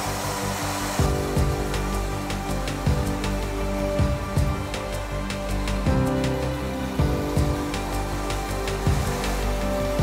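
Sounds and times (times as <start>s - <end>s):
toy train motor whirring: 0.0s - 10.0s.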